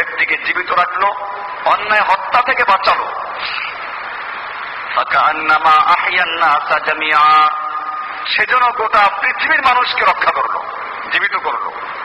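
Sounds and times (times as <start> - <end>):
man preaching: 0.0 - 3.4, 4.9 - 11.8
steady background hiss: 0.0 - 12.0.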